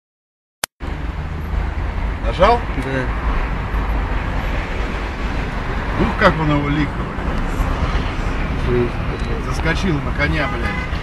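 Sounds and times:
car engine rumble: 0:00.8 - 0:11.0.

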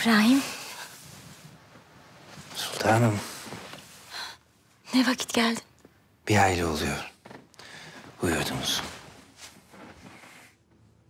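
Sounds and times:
clothing and bedding rustling: 0:00.1 - 0:04.3, 0:07.2 - 0:11.0.

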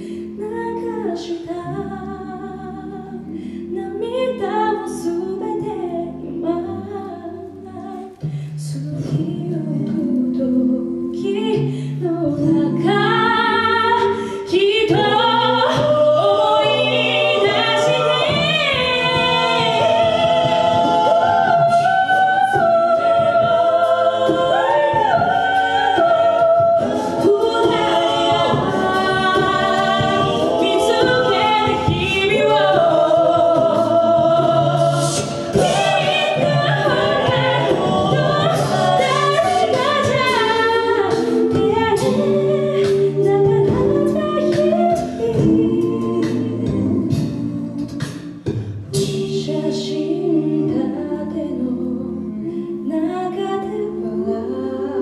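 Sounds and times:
backing vocal harmonies: 0:00.0 - 0:55.0
sung bass line: 0:08.7 - 0:55.0
lead voice singing: 0:14.6 - 0:48.2.

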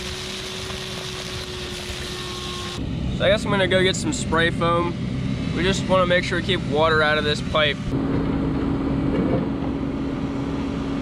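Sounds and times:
shop vacuum whining: 0:00.0 - 0:04.9.

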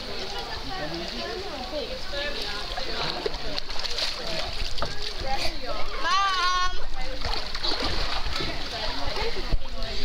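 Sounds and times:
voices chattering: 0:00.0 - 0:10.0
water splashing and sloshing: 0:00.0 - 0:10.0.

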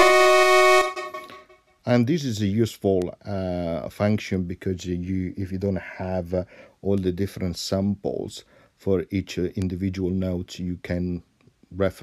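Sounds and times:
synthesizer note: 0:00.0 - 0:01.4.

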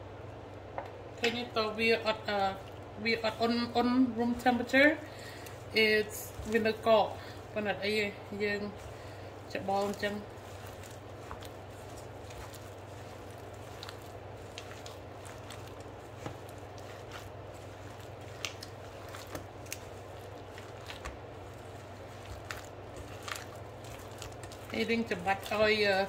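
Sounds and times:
steady low hum: 0:00.0 - 0:26.0
hand squishing wet filling: 0:01.2 - 0:26.0.

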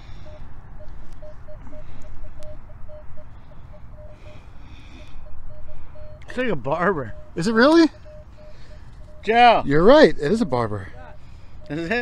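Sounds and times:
metal detector beep: 0:00.0 - 0:12.0.

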